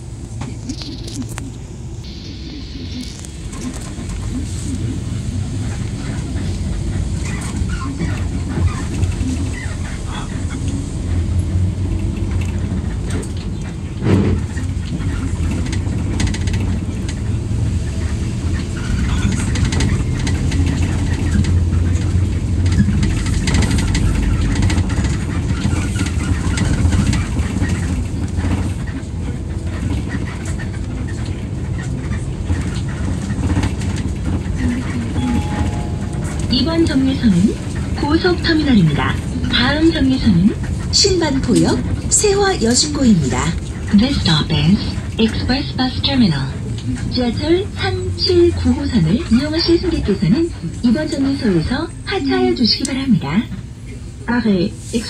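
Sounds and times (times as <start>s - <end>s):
bus engine drone: 0.0s - 55.0s
road and tyre noise: 0.0s - 55.0s.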